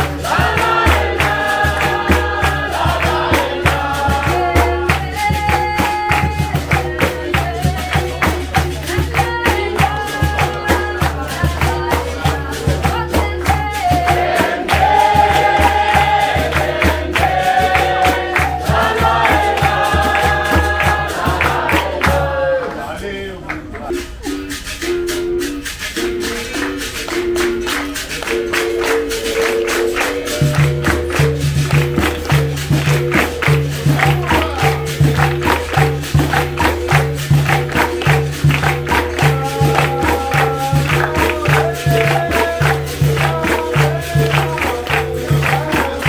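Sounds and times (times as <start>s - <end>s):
shaker rattles: 0.0s - 22.2s, 23.9s - 46.0s
berimbau two-note rhythm: 0.0s - 22.4s, 23.6s - 46.0s
person singing: 0.0s - 22.6s, 23.8s - 36.7s, 37.4s - 46.0s
hand drum steady beat: 0.0s - 22.8s, 23.6s - 46.0s.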